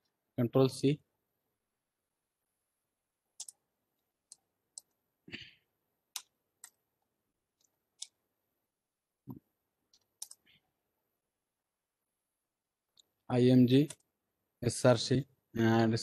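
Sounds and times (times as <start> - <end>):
keyboard and mouse clicking: 3.4 - 3.6, 4.2 - 5.0, 6.1 - 6.8, 7.6 - 8.2, 9.3 - 10.5, 13.7 - 14.1.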